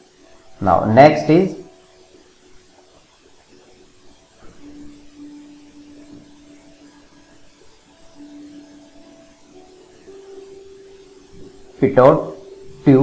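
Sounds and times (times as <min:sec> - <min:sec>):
faint electronic tones: 0:00.0 - 0:13.0.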